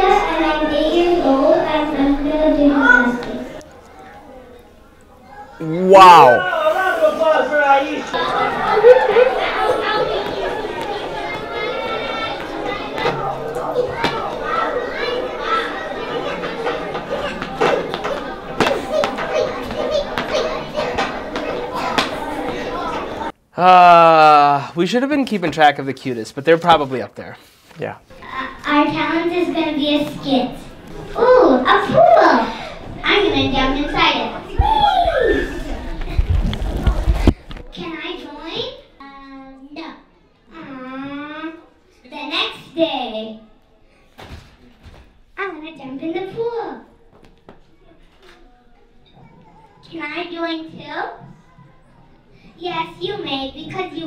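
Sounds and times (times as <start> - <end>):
girls' voices through microphone: 0.0 - 6.4, 8.0 - 23.4, 28.1 - 44.1, 45.4 - 54.0
children calling out and chattering: 0.0 - 24.4, 28.1 - 54.0.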